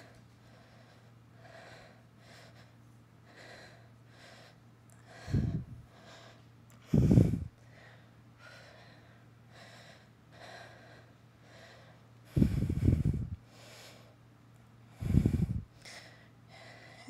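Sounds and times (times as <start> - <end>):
woman breathing hard: 0.0 - 14.2, 14.9 - 17.0
loud low breath puffs: 5.2 - 5.8, 6.8 - 7.6, 12.3 - 14.0, 15.0 - 17.0.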